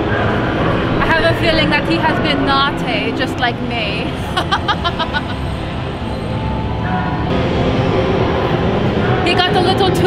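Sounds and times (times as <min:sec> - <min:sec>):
loud steady rumbling: 0:00.0 - 0:10.0.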